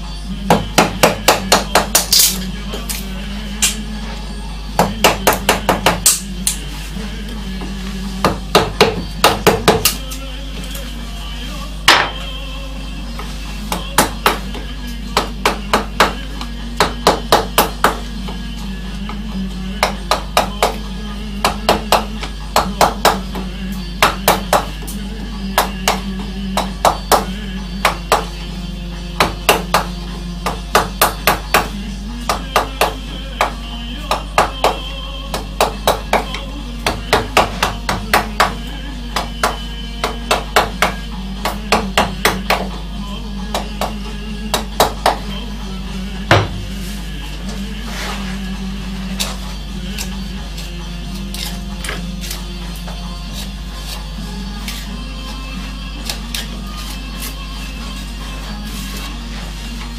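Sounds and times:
background music: 0:00.0 - 0:59.9
mallet striking gouge handle: 0:46.3 - 0:46.7.

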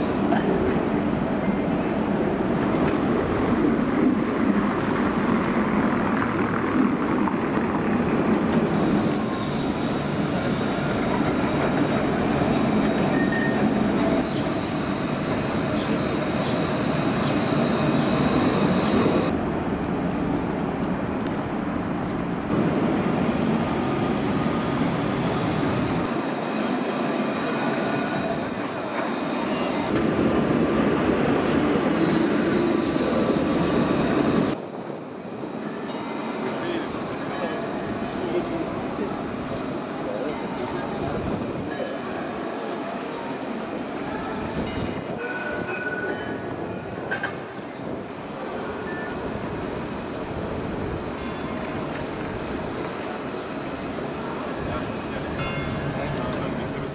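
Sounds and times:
tram wheels rumbling on rails: 0:00.0 - 0:56.9.

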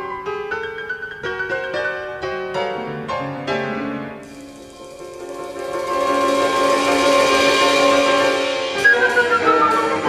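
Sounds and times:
instrumental ensemble playing: 0:04.3 - 0:10.0.

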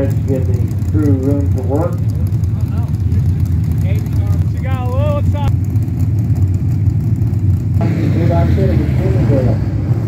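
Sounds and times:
stock car engines rumbling: 0:00.0 - 0:10.0.

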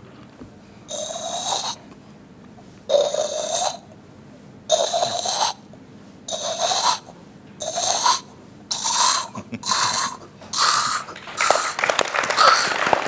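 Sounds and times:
person imitating rasping machine: 0:00.9 - 0:01.8, 0:02.9 - 0:03.9, 0:04.7 - 0:05.7, 0:06.3 - 0:13.0.

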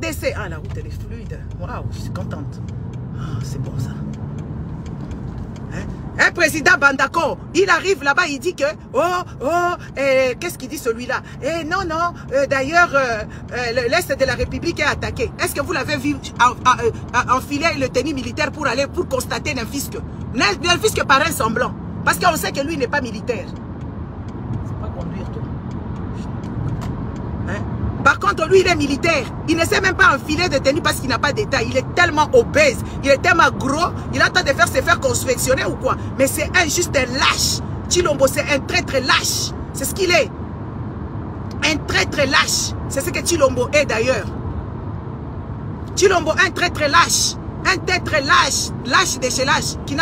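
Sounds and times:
car engine and tyre rumble: 0:00.0 - 0:50.0.

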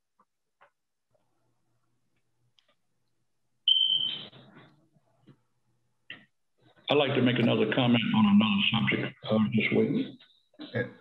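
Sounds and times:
high-pitched electronic beep: 0:03.7 - 0:04.4.

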